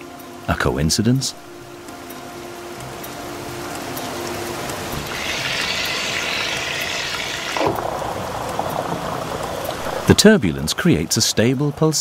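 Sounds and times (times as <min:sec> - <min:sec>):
water rushing down a funnel: 0:04.6 - 0:11.4.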